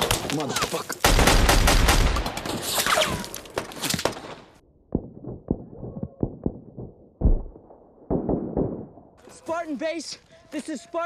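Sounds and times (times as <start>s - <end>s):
rapid gunshots: 1.0s - 2.5s.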